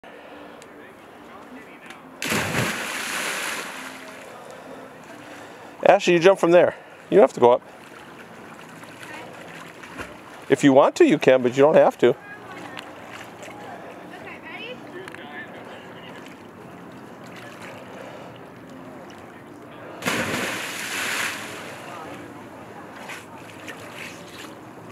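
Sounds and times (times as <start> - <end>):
child splashing into water: 2.2 - 3.9, 20.0 - 21.7
water washing and settling: 2.2 - 4.1, 20.0 - 21.8.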